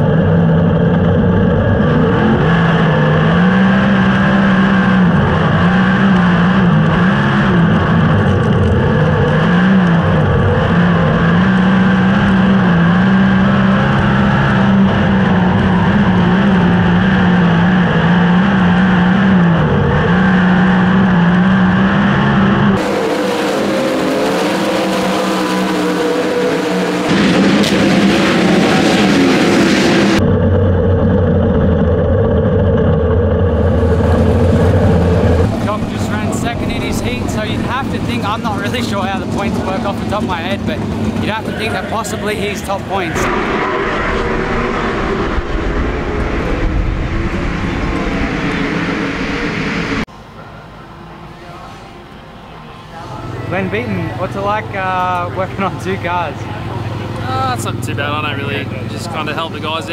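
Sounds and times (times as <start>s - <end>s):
race car engine racing: 0.0s - 59.9s.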